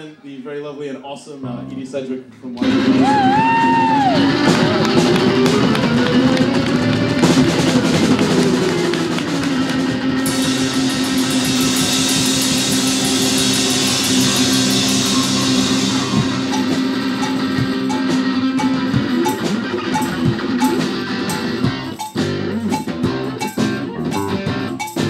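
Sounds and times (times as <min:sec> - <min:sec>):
live rock band playing: 0:02.6 - 0:25.0
fast cymbal strokes: 0:10.2 - 0:25.0.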